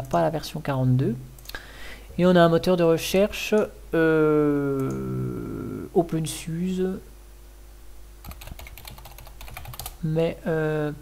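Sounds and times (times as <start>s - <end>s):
person speaking: 0.0s - 7.1s, 9.9s - 11.0s.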